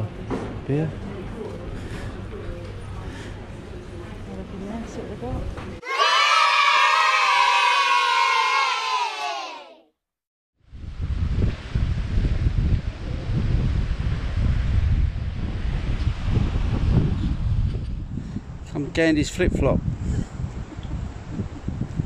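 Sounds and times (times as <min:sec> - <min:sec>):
crowd cheering: 0:05.8 - 0:09.9
wind buffeting microphone: 0:10.6 - 0:22.0.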